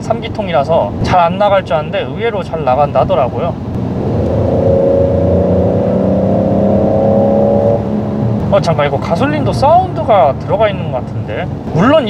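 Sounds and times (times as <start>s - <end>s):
car engine accelerating: 3.6s - 10.9s.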